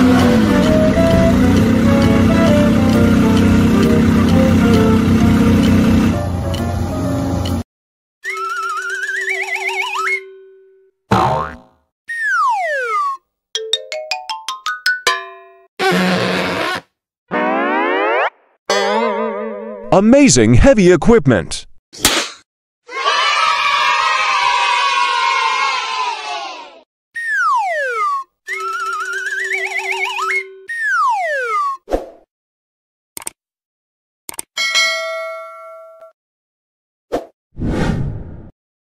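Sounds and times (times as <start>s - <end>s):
springy boing: 11.1s - 12.3s
children cheering: 22.9s - 26.8s
falling whistle: 27.2s - 31.8s.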